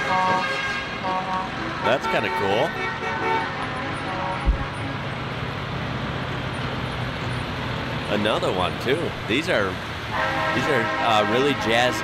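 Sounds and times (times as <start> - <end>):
truck horns blaring: 0.0 - 5.8, 9.5 - 12.0
trucks driving past: 0.0 - 12.0.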